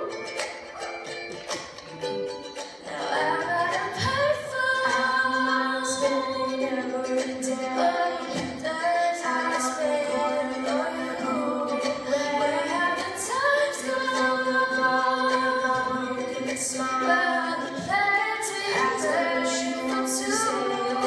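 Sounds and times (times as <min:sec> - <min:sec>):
strummed ukulele: 0:00.0 - 0:21.0
women singing a pop song: 0:02.8 - 0:21.0.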